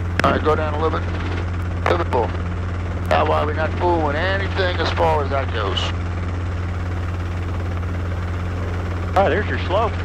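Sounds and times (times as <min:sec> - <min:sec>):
helicopter engine and rotor drone: 0:00.0 - 0:10.0.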